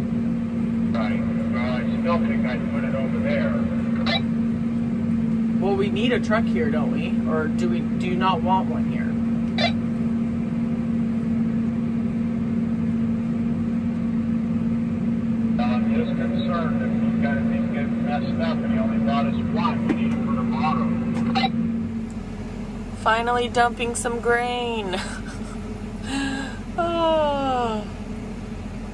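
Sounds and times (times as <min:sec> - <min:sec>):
combine harvester drone: 0:00.0 - 0:28.9
voice over two-way radio: 0:15.6 - 0:21.5.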